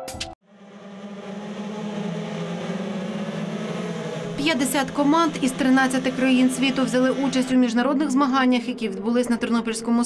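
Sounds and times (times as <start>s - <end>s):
powerboat engines droning: 0.5s - 8.4s.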